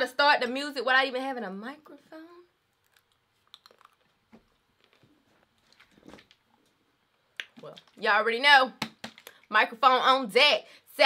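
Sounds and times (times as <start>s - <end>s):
plastic bottle handling clicks and rustles: 3.8s - 6.8s.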